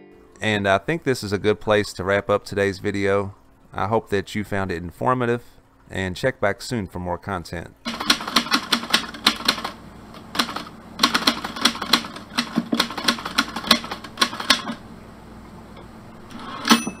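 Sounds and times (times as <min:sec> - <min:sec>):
typewriter keys clacking: 0:07.9 - 0:09.8, 0:10.4 - 0:14.8
typewriter bell ringing: 0:16.4 - 0:17.0.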